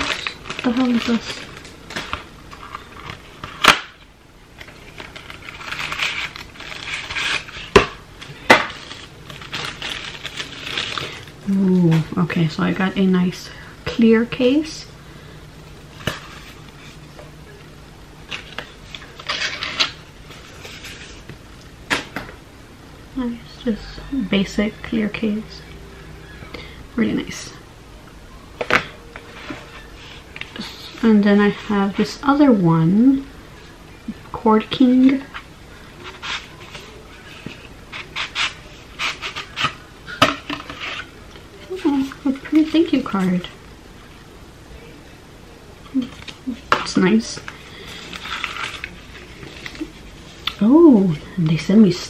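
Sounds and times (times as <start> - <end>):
packaging rustle: 0.0 - 4.0, 4.6 - 11.4, 47.4 - 50.4
low steady hum: 0.0 - 52.0.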